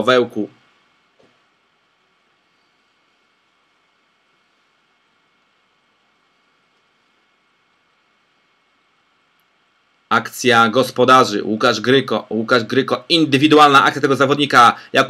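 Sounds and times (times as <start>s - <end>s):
faint steady hiss: 0.0s - 15.0s.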